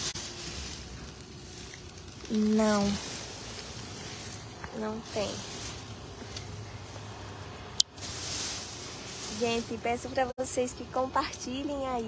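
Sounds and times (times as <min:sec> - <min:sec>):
plastic bags rustling: 0:00.0 - 0:10.4.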